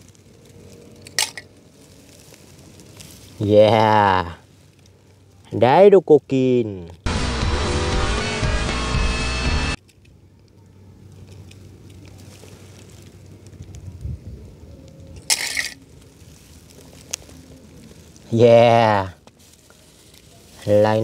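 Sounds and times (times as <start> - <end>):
short rustle: 0.0 - 3.6, 11.0 - 14.2, 19.2 - 21.0
faint outdoor background: 0.0 - 21.0
film soundtrack music: 7.1 - 9.8.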